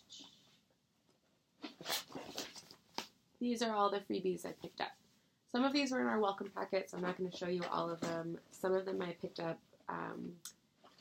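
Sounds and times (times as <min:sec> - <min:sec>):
paper rustling and crinkling: 0:01.7 - 0:03.1.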